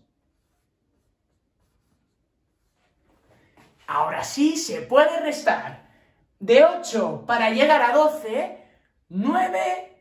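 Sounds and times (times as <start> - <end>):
marker pen on whiteboard: 0.0 - 5.4.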